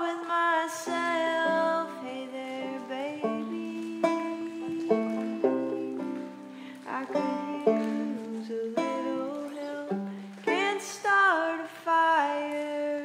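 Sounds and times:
banjo picking: 0:00.0 - 0:11.7.

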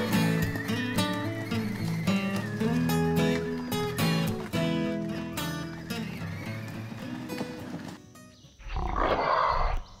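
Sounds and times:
growling roar: 0:08.6 - 0:09.9.

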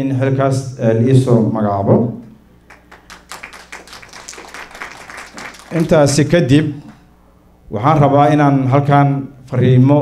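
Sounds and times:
audience clapping: 0:02.7 - 0:07.0.

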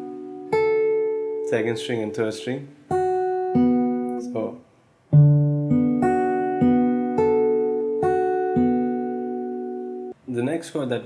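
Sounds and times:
acoustic guitar fingerpicking: 0:00.0 - 0:02.1, 0:02.7 - 0:10.2.

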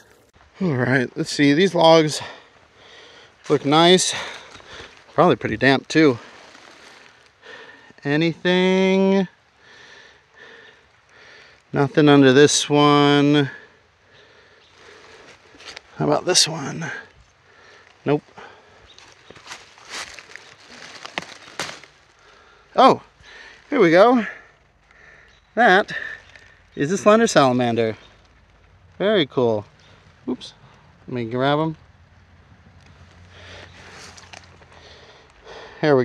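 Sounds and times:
leaf litter rustling and crackling: 0:01.2 - 0:09.0, 0:09.6 - 0:36.0.

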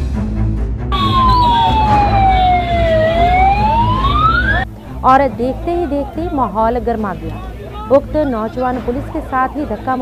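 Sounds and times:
siren wailing: 0:00.9 - 0:04.7.

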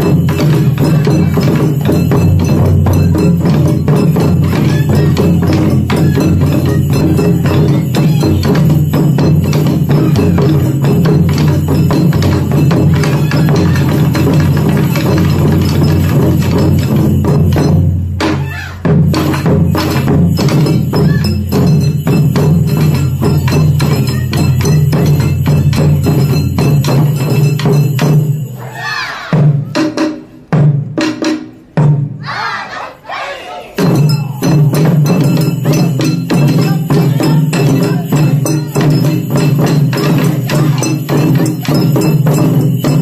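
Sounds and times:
hand percussion: 0:00.0 - 0:32.2, 0:33.7 - 0:43.0
taiko drums beating: 0:00.0 - 0:43.0.

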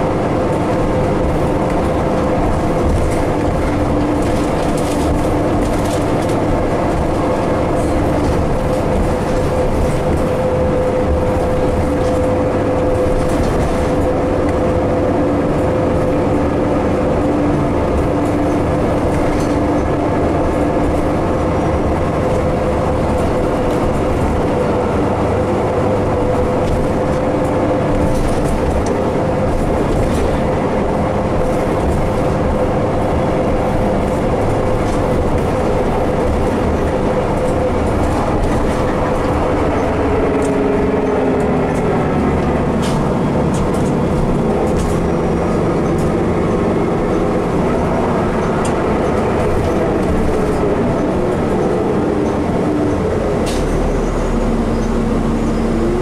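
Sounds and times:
bus drivetrain whine: 0:00.0 - 0:56.0
engine and road noise: 0:00.0 - 0:56.0.

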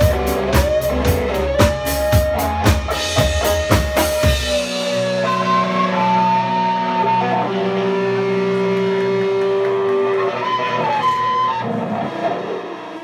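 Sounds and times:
electric guitar sustained notes: 0:00.0 - 0:13.0.

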